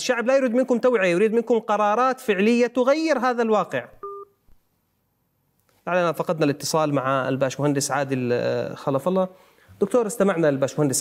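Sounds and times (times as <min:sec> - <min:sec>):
telephone line beep: 0:04.0 - 0:04.3.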